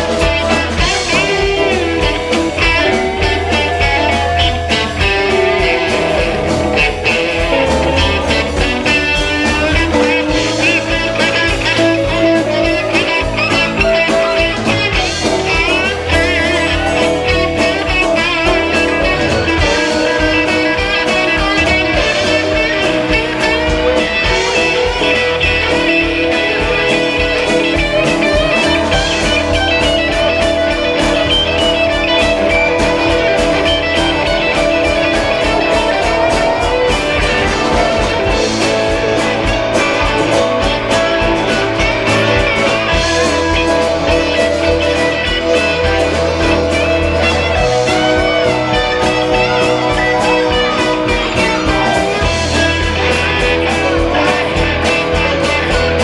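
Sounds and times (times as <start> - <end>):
bass: 0.0 - 56.0
drums: 0.0 - 56.0
electric guitar lead: 0.0 - 56.0
keyboards: 0.0 - 56.0.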